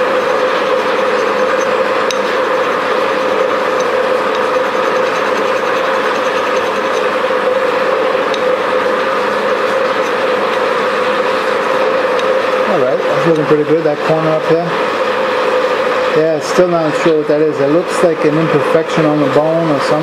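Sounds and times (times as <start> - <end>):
electric bench buffer whirring: 0.0 - 20.0.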